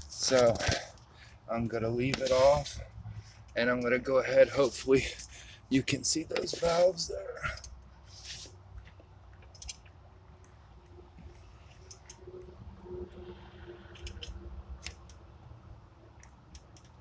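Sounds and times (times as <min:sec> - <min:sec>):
small metal clicks: 0:08.8 - 0:10.6.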